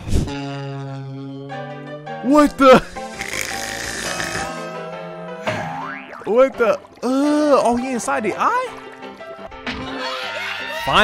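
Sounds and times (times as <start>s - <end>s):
background music with held tones: 0.3s - 11.0s.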